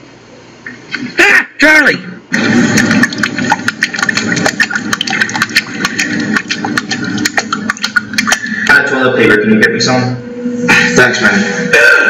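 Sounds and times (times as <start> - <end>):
sharp irregular clicks: 2.8 - 8.7.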